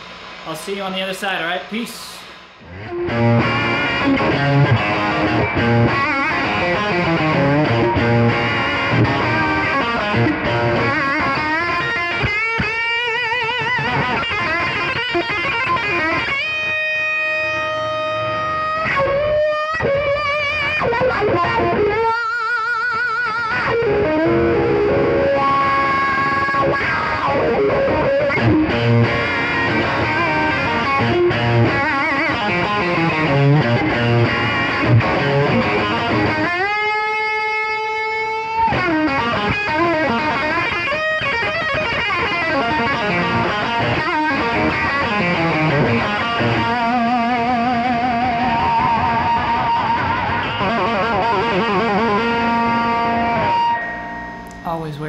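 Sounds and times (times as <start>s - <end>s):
overdriven electric guitar lead: 0.0s - 55.0s.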